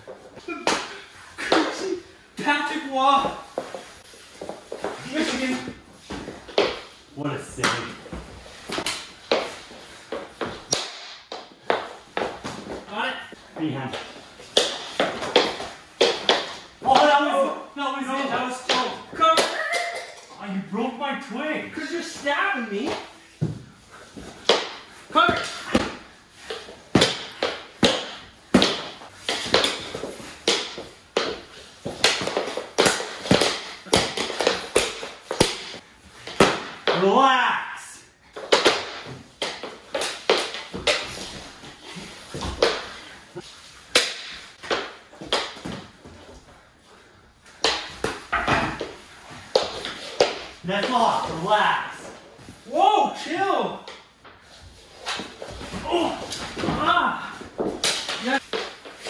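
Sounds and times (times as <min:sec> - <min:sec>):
plastic hockey sticks clacking: 0:00.1 - 0:02.5, 0:08.6 - 0:12.8, 0:13.9 - 0:17.2, 0:18.3 - 0:20.3, 0:21.8 - 0:37.0, 0:38.3 - 0:46.4, 0:47.4 - 0:51.4, 0:53.8 - 0:59.0
person shouting: 0:19.2 - 0:20.2, 0:52.7 - 0:53.8, 0:55.8 - 0:57.4.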